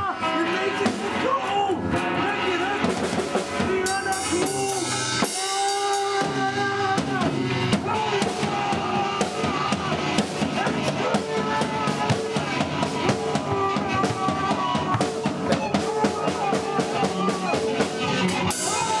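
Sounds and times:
drum kit fast rhythm: 0.0s - 19.0s.

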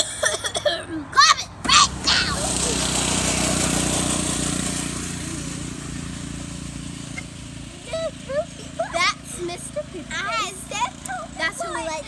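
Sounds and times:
motor vehicle passing by: 1.0s - 12.0s
low engine hum: 1.5s - 12.0s.

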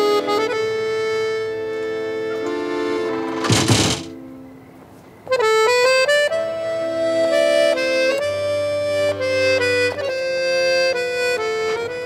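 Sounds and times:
background score music: 0.0s - 4.7s.

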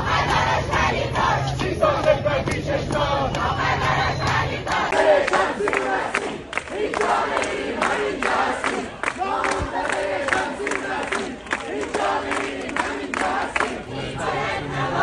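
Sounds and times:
rhythmic hand-clapping: 0.0s - 13.9s
crowd chanting in unison: 0.0s - 15.0s.

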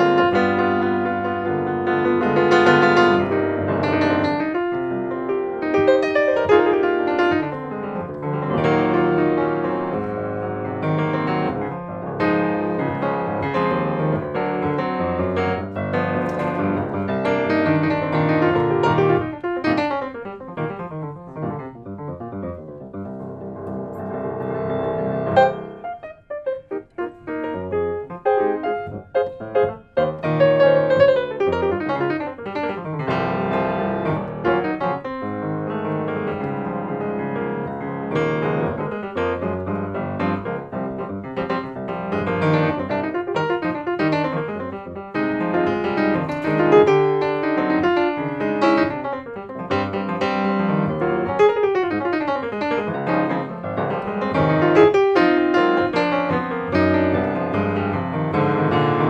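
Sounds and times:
grand piano playing: 0.0s - 59.0s.

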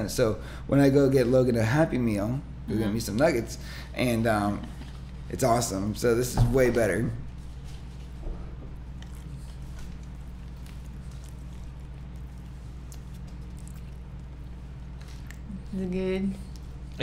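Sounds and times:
low electrical hum: 0.0s - 17.0s
faint chewing: 8.7s - 17.0s.

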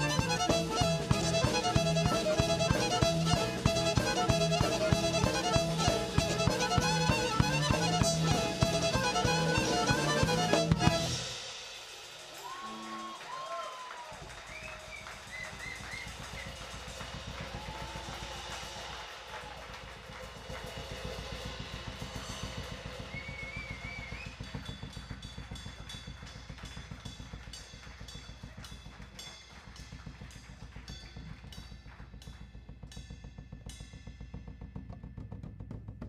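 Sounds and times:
double bass: 0.0s - 11.2s
accordion: 0.0s - 11.4s
drum kit beat: 0.0s - 36.0s.

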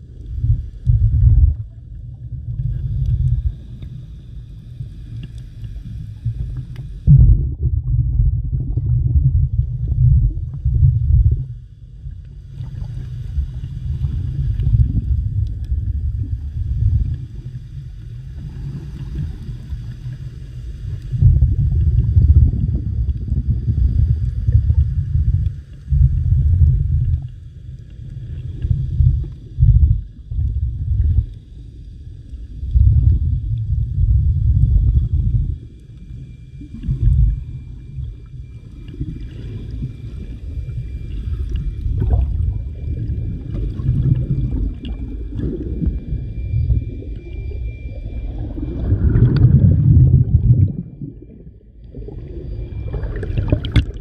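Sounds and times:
muffled underwater water rumble: 0.0s - 54.0s
faint steady high tone: 34.7s - 54.0s.

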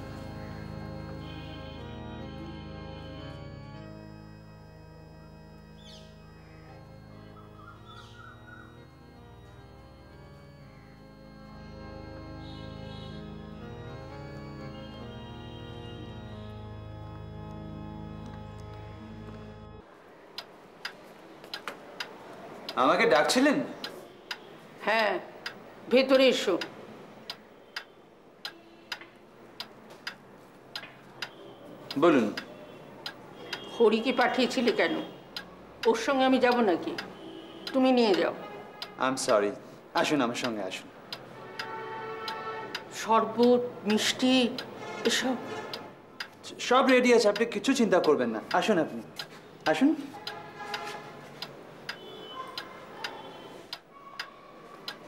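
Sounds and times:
clock ticking: 0.0s - 55.0s.

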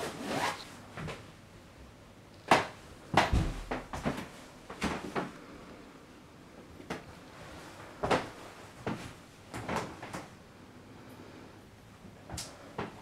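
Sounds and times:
dull thuds: 3.1s - 4.2s.

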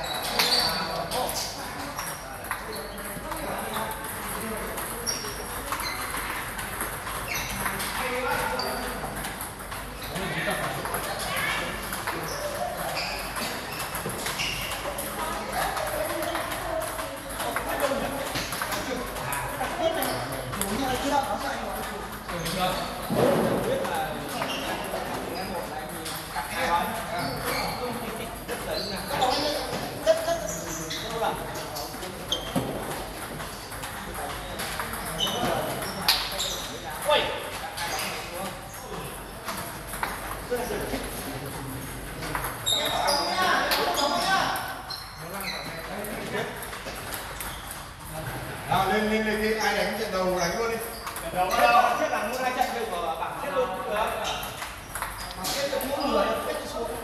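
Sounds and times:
people talking: 0.0s - 47.2s, 48.1s - 57.0s
players' voices: 0.0s - 57.0s
table tennis ball clicking: 54.4s - 56.0s
table tennis ball hits: 54.5s - 55.2s.

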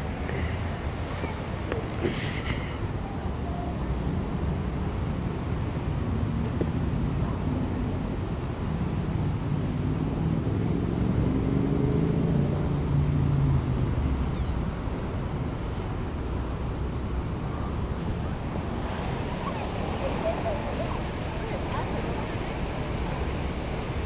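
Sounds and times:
low traffic rumble: 0.0s - 24.0s
vehicle engine passing: 10.2s - 14.4s, 17.6s - 24.0s.

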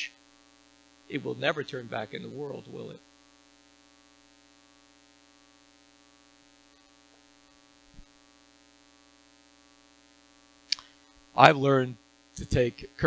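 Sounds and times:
steady electrical hum: 0.0s - 13.0s.

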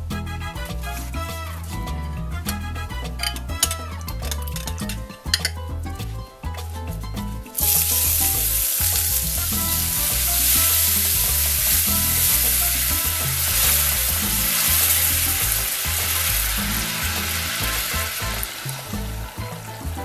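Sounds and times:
spatula stirring: 0.7s - 20.0s
juice sizzling in hot caramel: 7.6s - 20.0s.

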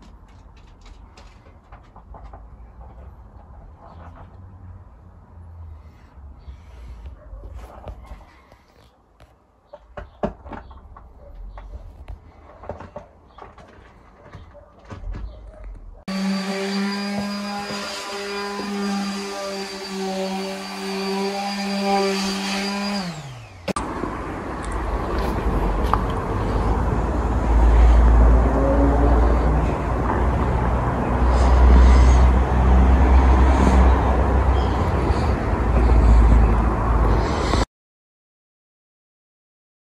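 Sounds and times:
small electric motor running: 16.1s - 23.8s.

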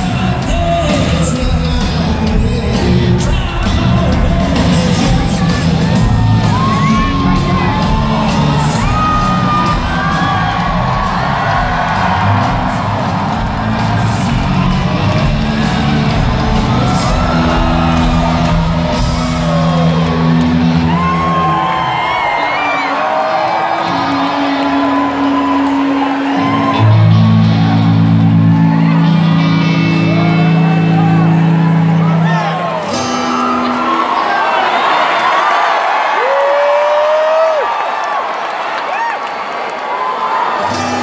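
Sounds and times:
live rock band: 0.0s - 34.4s
audience whooping and cheering: 0.0s - 41.0s.

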